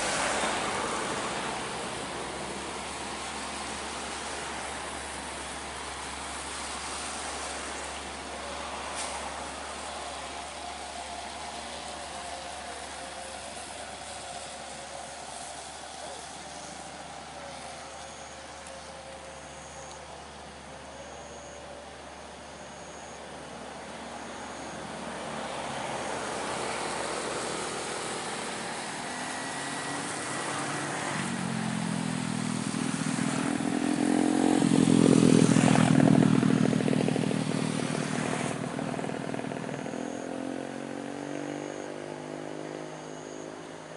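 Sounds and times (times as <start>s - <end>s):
truck diesel engine passing: 0.0s - 43.9s
scooters passing: 23.8s - 43.9s.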